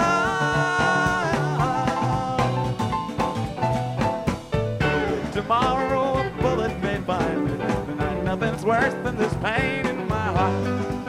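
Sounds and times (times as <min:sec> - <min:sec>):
live rock band playing: 0:00.0 - 0:11.0
wavering lead guitar line: 0:00.0 - 0:11.0.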